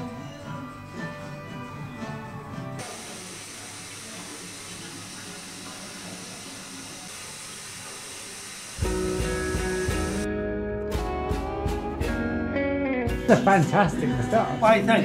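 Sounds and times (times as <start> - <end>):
guitar-led music: 8.8 - 15.0.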